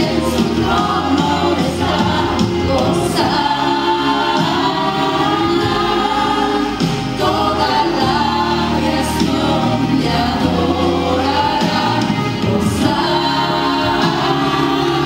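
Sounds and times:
instrumental accompaniment: 0.0 - 15.0
low bass: 0.0 - 15.0.

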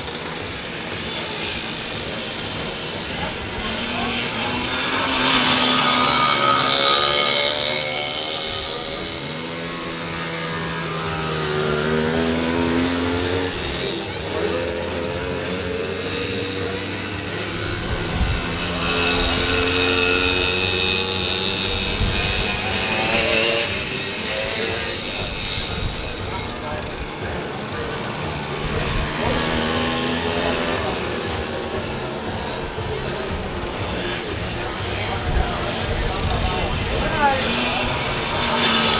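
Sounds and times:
racing motorbike engines revving: 0.0 - 38.9.

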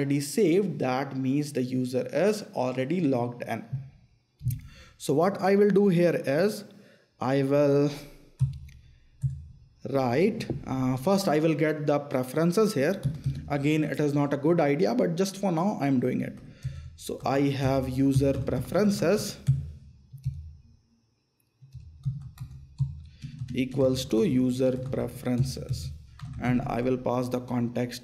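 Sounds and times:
laptop keystrokes: 12.9 - 13.5, 21.6 - 26.8.

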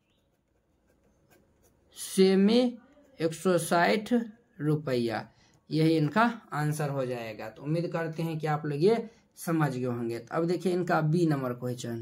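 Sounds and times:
pen scratching on paper: 0.0 - 4.0.

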